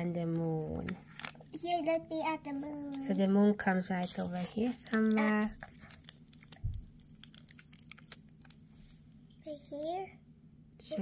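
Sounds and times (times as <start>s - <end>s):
sticker paper crinkling: 0.3s - 1.6s, 2.8s - 9.0s.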